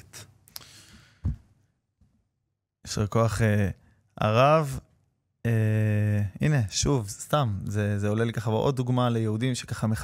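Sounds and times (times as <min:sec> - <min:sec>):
man speaking: 0:02.8 - 0:10.0.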